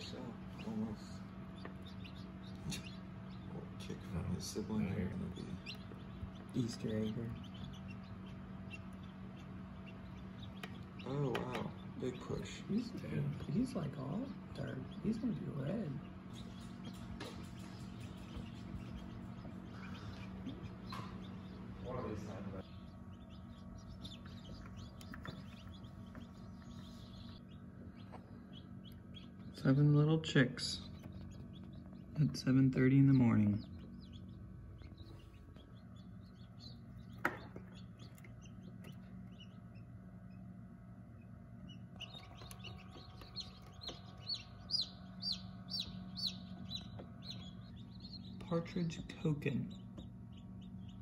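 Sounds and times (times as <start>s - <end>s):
chicks peeping: 0.0s - 51.0s
incubator low hum: 0.0s - 51.0s.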